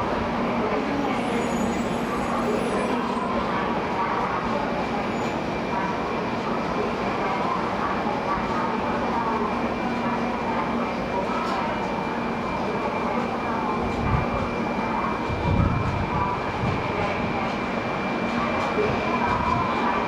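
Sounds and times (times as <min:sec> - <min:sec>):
station background noise: 0:00.0 - 0:20.0
train humming at platform: 0:00.0 - 0:20.0.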